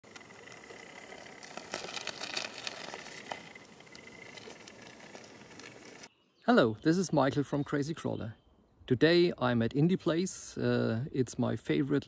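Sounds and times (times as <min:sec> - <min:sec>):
rubber tyres scraping on rock: 0:00.0 - 0:06.1.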